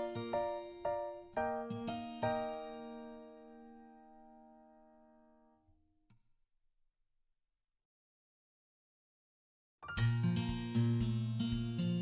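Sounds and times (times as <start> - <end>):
held keyboard chord: 0.0 - 4.7.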